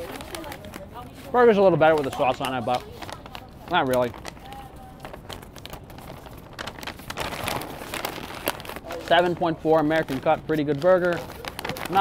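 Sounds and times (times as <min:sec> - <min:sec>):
paper bag rustling and crinkling: 0:00.0 - 0:12.0.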